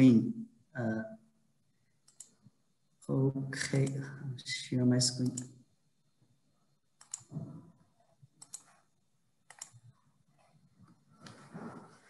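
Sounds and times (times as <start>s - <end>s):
faint computer mouse clicks: 2.0s - 2.4s, 7.0s - 7.3s, 8.4s - 8.8s, 9.5s - 9.9s.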